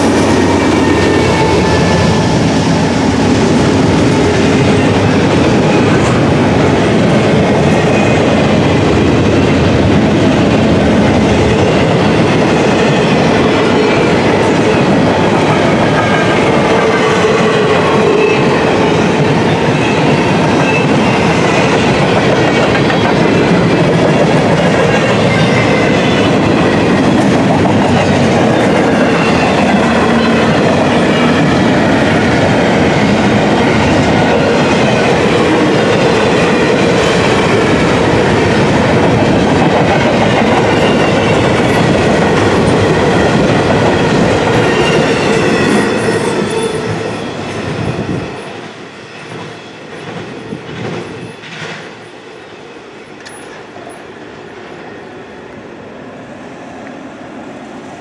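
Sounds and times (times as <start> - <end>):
freight train rolling past: 0.0 - 58.0.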